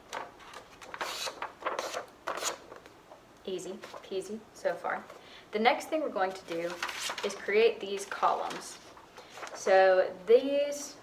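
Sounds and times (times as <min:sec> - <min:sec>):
paper being folded: 0:00.1 - 0:02.9, 0:06.4 - 0:09.7.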